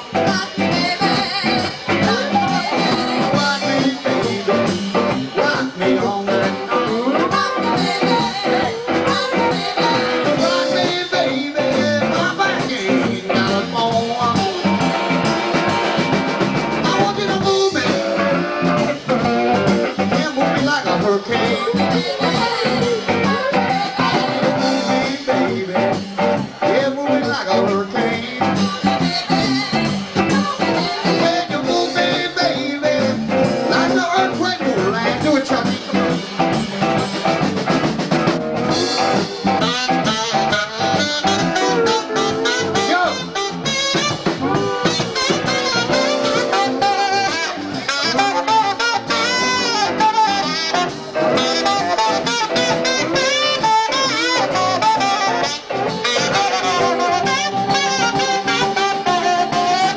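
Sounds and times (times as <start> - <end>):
person singing: 0.0 - 16.1, 16.8 - 37.5, 38.7 - 59.9
acoustic guitar: 0.0 - 59.9
drums: 0.0 - 59.9.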